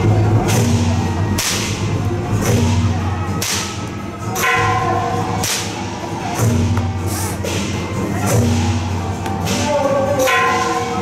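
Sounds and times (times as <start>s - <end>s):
rope whip cracking: 3.4s - 3.8s.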